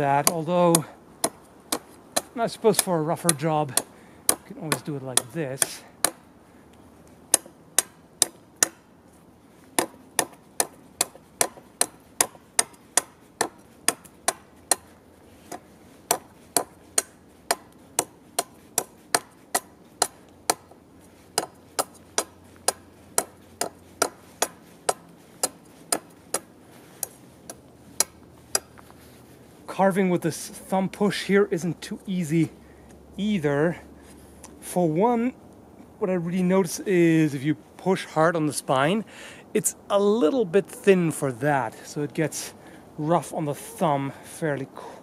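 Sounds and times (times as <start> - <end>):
sword chopping into wood: 0.2 - 6.2, 7.3 - 8.8, 9.8 - 14.9, 15.5 - 28.7.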